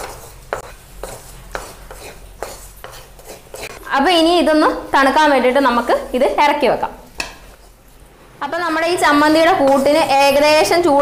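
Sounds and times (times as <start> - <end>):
wooden spatula scraping a pan: 0.0 - 4.1, 8.8 - 11.0.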